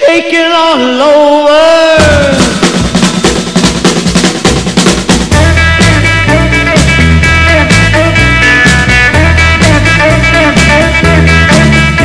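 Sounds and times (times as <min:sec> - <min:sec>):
guitar: 0:01.6 - 0:12.0
rapid snare drum hits: 0:02.0 - 0:06.2
bass line: 0:02.0 - 0:12.0.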